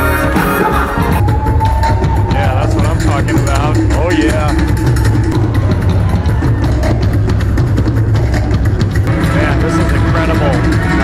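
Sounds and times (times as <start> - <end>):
live band with drums and bass: 0.0 - 11.0.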